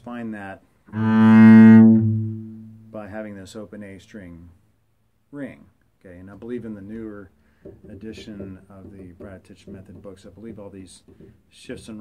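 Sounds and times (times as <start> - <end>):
bowed double bass note: 0.9 - 2.9.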